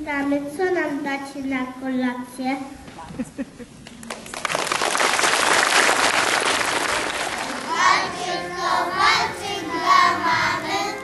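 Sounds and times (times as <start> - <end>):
audience applause: 4.1 - 7.8.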